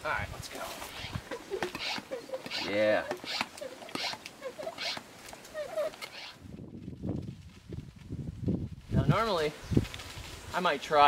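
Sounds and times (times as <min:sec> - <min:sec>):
squeaky hand pump strokes: 0:00.8 - 0:06.4.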